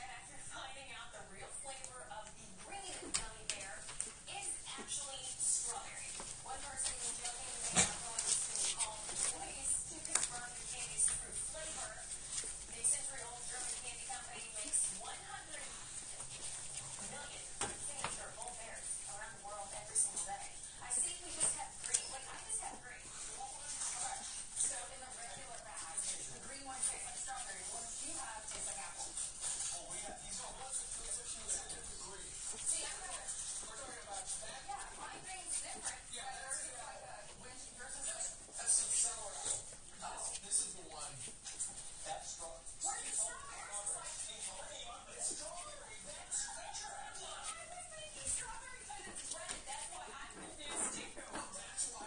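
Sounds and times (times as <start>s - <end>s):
puppies suckling: 2.8s - 52.0s
newspaper rustling: 3.2s - 36.7s
puppies squeaking and grunting: 7.1s - 9.8s.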